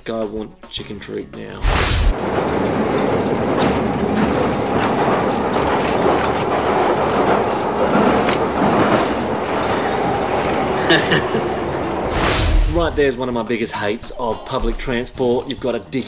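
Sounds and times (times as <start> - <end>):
rail carriage rumble and clatter: 1.4 - 16.0
man laughing: 10.8 - 11.7.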